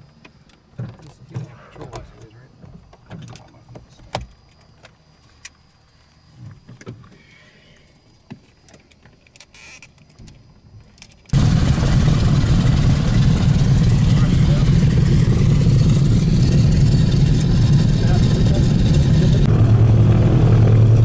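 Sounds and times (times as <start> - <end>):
aircraft engines droning: 11.3 - 21.0.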